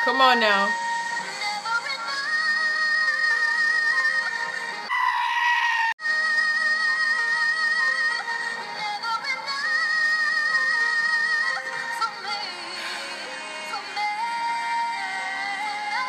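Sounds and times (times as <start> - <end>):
backing music: 0.0 - 4.9, 6.0 - 16.0
sheep bleating: 4.9 - 6.0
female vocal group singing: 6.3 - 16.0.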